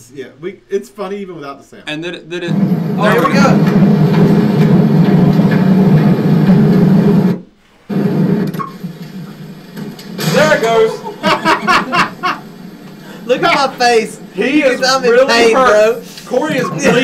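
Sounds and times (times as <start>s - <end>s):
voices: 0.0s - 3.8s, 10.2s - 17.0s.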